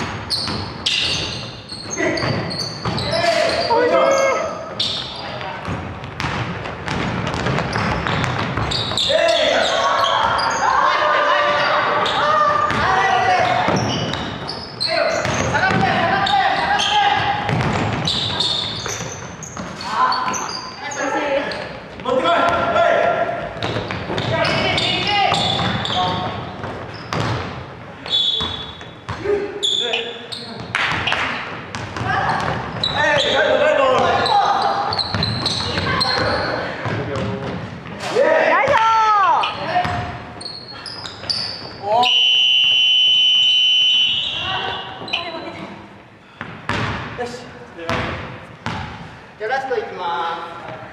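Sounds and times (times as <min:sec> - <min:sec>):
players' voices calling out: 0:01.7 - 0:05.6, 0:08.7 - 0:19.2
basketball bouncing on wooden floor: 0:02.2 - 0:03.1, 0:05.6 - 0:09.0, 0:12.5 - 0:13.0, 0:15.2 - 0:16.2, 0:17.2 - 0:19.7, 0:23.6 - 0:27.6, 0:28.4 - 0:29.2, 0:31.7 - 0:33.0, 0:35.0 - 0:38.0, 0:39.8 - 0:40.2, 0:46.4 - 0:47.2, 0:47.9 - 0:49.0.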